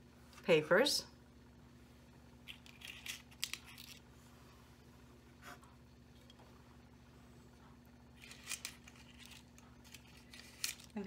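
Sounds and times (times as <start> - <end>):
faint steady hum: 0.0 - 11.0
paper cups crinkling: 8.1 - 11.0.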